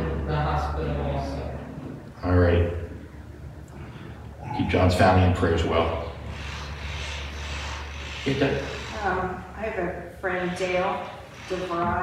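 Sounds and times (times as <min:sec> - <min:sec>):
low hum: 0:00.0 - 0:11.5.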